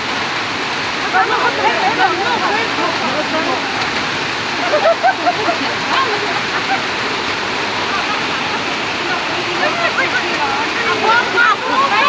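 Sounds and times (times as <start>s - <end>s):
heavy rain pouring: 0.0s - 12.0s
water running across street: 0.0s - 12.0s
voices: 0.7s - 12.0s.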